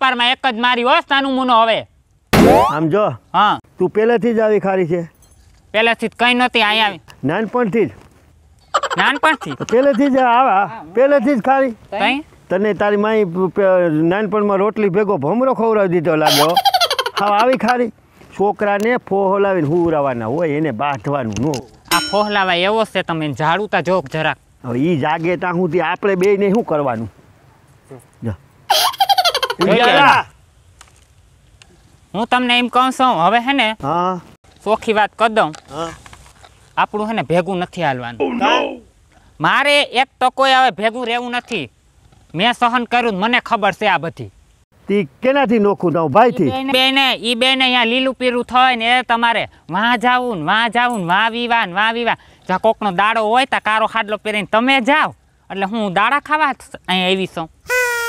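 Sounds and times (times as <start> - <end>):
cartoon rising pitch sweep: 2.4 - 2.8, 57.7 - 58.0
person laughing: 8.7 - 10.2, 16.2 - 17.8, 28.7 - 30.2, 57.7 - 58.0
person talking: 8.8 - 11.3, 16.2 - 17.9, 28.7 - 30.3, 38.2 - 38.8, 46.1 - 47.0.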